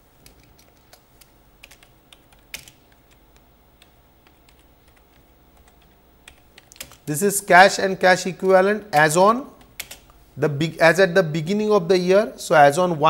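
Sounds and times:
computer keyboard keystrokes: 0.2 - 7.1, 9.0 - 10.1.

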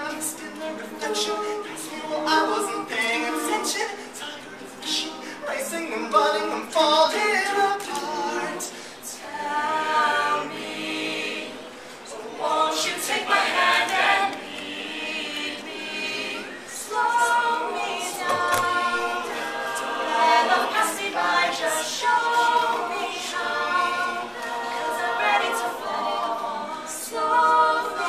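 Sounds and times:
a cappella group singing: 0.0 - 28.0.

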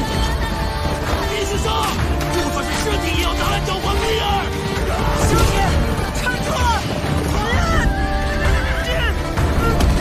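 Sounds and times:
dramatic orchestral music: 0.0 - 10.0.

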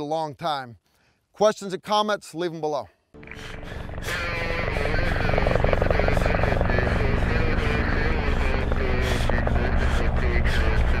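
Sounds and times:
helicopter rotor chop: 3.2 - 11.0
person talking: 4.0 - 11.0.

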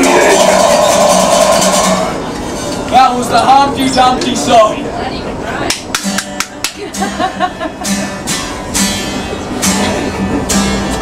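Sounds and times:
acoustic guitar strumming: 0.0 - 2.9, 5.9 - 11.0.

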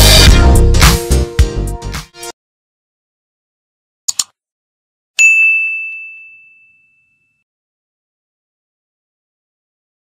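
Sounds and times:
notification bell ding: 5.2 - 7.4.

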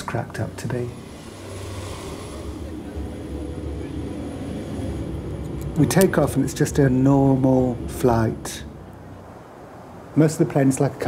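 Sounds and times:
jet engines rumbling: 0.0 - 11.0.

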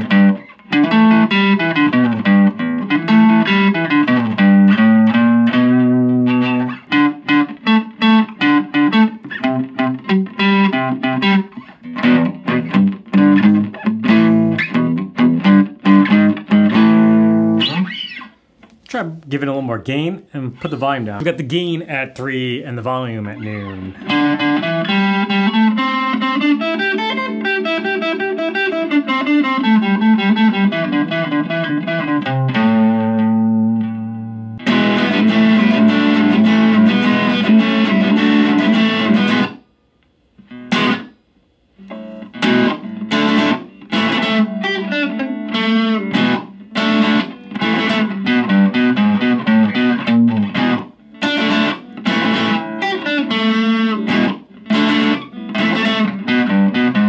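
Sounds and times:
overdriven electric guitar chords: 0.0 - 18.4, 22.9 - 39.7, 40.3 - 57.0.

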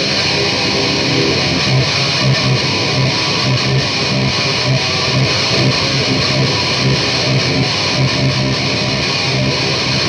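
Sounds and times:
electric guitar playing: 0.0 - 10.0.

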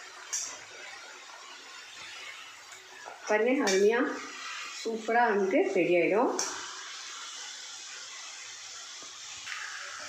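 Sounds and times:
dough sizzling in hot oil: 0.0 - 10.0.

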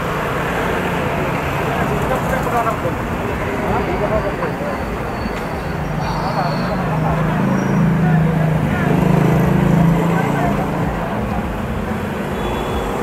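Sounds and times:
cars and motorbikes passing: 0.0 - 13.0
indistinct chatter: 0.0 - 13.0.

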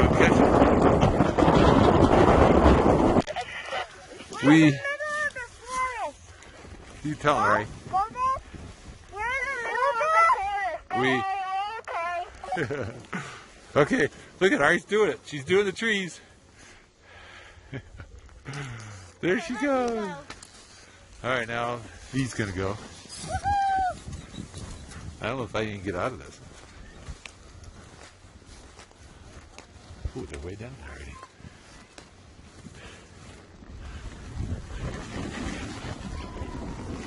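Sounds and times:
child calling out: 9.1 - 12.6, 23.2 - 24.0.

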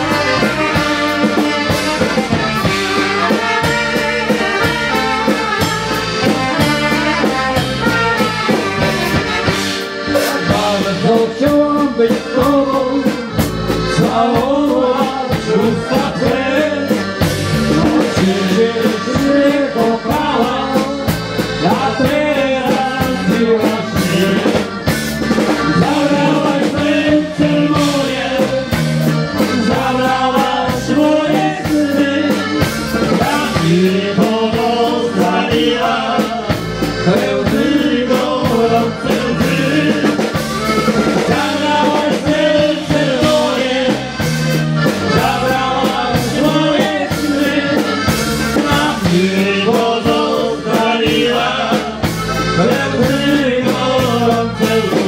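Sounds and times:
band playing dance music: 0.0 - 55.0.

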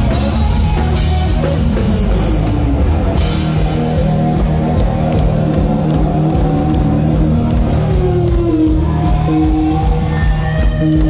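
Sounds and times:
bass: 0.0 - 11.0
distorted electric guitars: 0.0 - 11.0.

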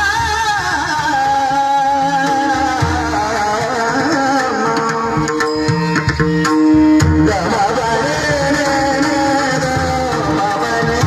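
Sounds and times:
instrumental accompaniment: 0.0 - 11.0.

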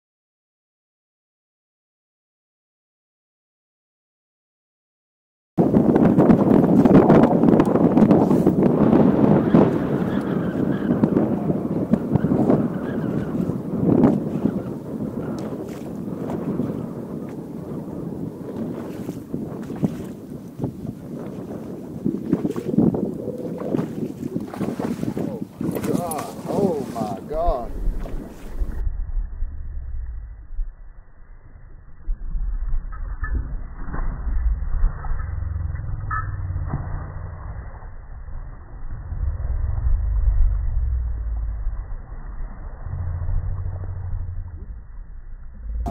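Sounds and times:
wind buffeting microphone: 5.6 - 31.1
water slapping boat hull: 15.2 - 28.8.

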